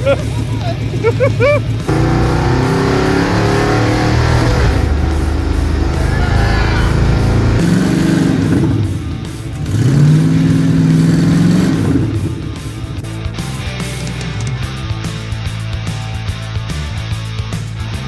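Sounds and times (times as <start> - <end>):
car engine running: 0.0 - 15.3
music: 0.0 - 18.0
engine revving: 1.7 - 14.9.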